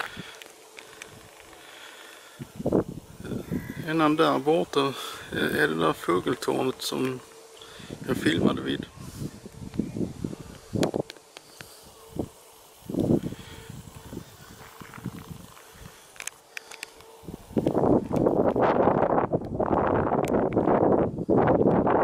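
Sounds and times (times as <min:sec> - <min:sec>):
wind buffeting microphone: 0:02.4 - 0:04.2, 0:07.8 - 0:11.2, 0:11.8 - 0:16.1, 0:17.2 - 0:22.0.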